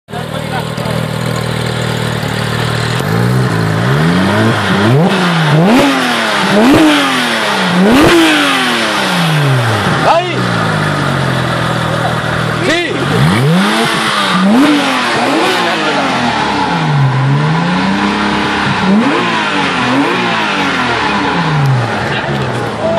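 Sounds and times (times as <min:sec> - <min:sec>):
car engine revving: 0:00.1 - 0:22.9.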